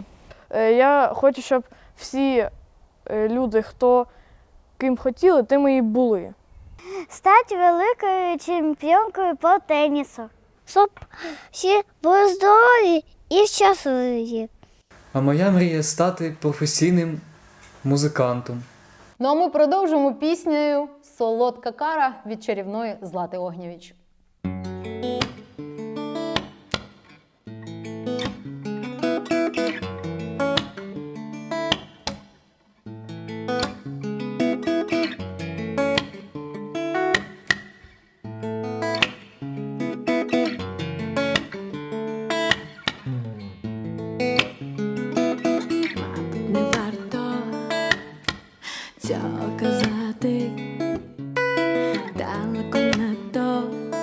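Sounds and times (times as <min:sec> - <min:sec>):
strummed acoustic guitar: 0:24.4 - 0:54.0.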